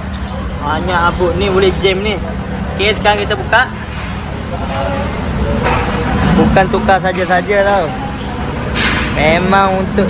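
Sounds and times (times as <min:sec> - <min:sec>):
indistinct voices: 0:00.0 - 0:10.0
workshop background hum: 0:00.0 - 0:10.0.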